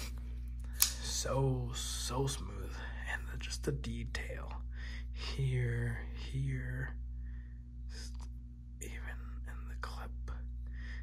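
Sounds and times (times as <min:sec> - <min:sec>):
low electrical hum: 0:00.0 - 0:11.0
person whispering: 0:07.9 - 0:10.5.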